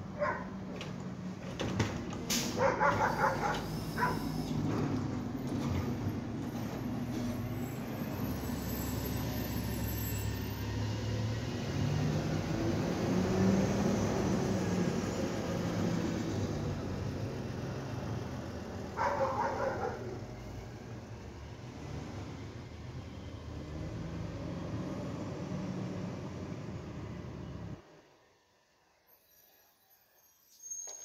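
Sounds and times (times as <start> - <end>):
garbage truck diesel engine: 0.0 - 28.2.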